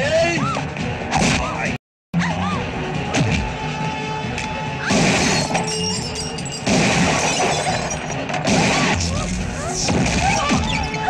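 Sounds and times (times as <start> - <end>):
film background score: 0.0 - 11.0
crashing shattering hits: 4.9 - 8.8.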